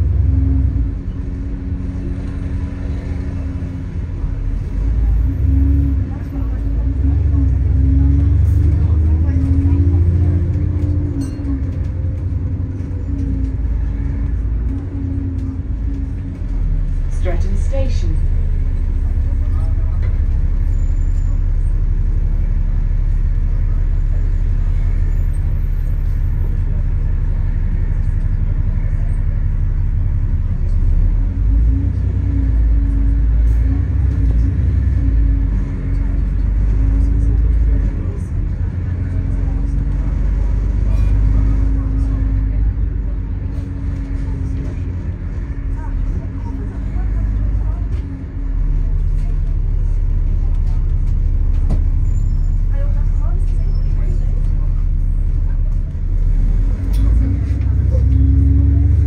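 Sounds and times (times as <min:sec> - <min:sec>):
bus engine rumbling: 0:00.0 - 0:59.0.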